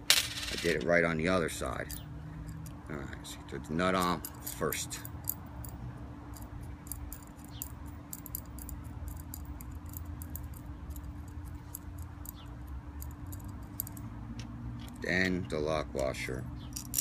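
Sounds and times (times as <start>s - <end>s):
metal nut and washers clicking: 1.7s - 2.8s, 3.9s - 15.6s, 16.7s - 17.0s.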